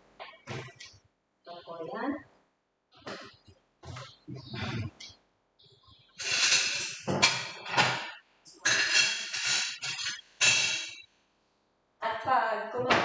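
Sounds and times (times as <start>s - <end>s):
dishes clattering and scraping: 6.2s - 11.0s.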